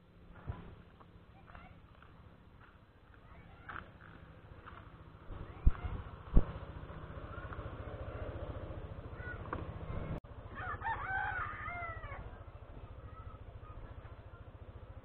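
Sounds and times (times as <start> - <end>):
scooter engine idling: 0.0 - 15.0
rooster crowing: 10.5 - 12.4.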